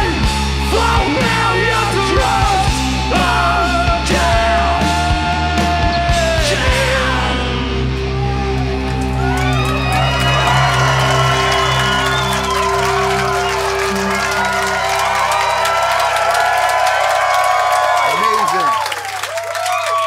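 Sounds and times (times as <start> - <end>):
crowd cheering and whooping: 4.8 - 20.0.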